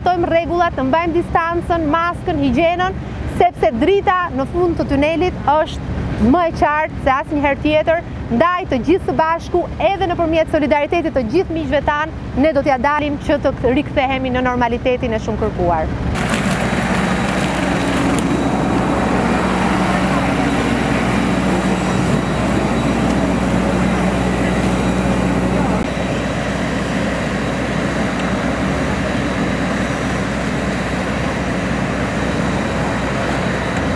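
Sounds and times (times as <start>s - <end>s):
droning engine hum: 0.0s - 33.9s
low held tones: 17.2s - 33.9s.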